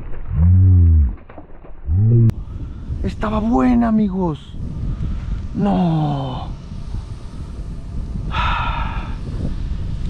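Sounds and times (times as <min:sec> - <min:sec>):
wind rumble on microphone: 0:01.8 - 0:10.0.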